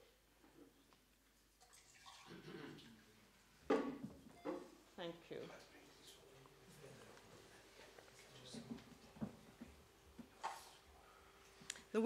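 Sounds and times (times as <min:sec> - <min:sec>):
water poured into a glass: 0:01.6 - 0:02.5.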